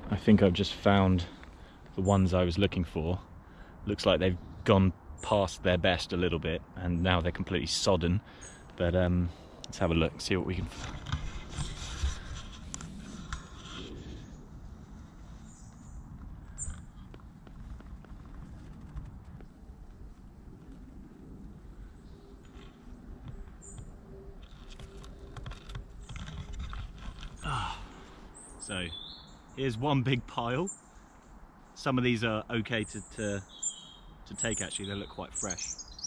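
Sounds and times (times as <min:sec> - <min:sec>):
low outdoor rumble: 0:00.0 - 0:33.5.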